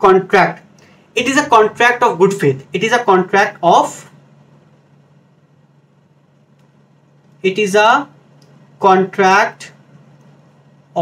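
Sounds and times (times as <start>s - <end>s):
thin low hum: 0.0s - 11.0s.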